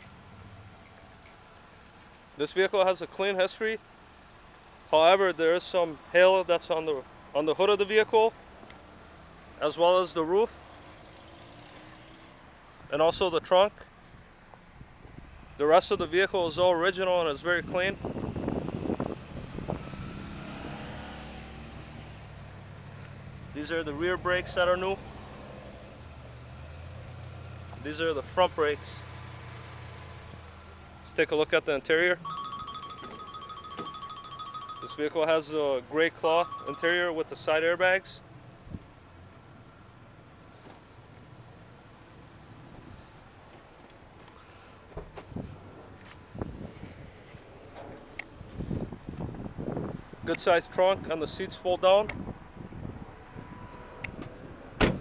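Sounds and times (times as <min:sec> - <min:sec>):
wind buffeting microphone: 0:17.6 - 0:20.7, 0:45.3 - 0:47.2, 0:47.9 - 0:50.3, 0:52.1 - 0:54.6
footsteps: 0:43.5 - 0:48.6.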